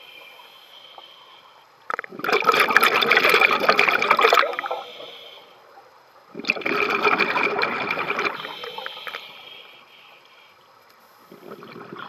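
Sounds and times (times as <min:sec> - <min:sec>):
exhaled air bubbling: 0:01.8 - 0:05.3, 0:06.3 - 0:09.2, 0:11.3 - 0:12.0.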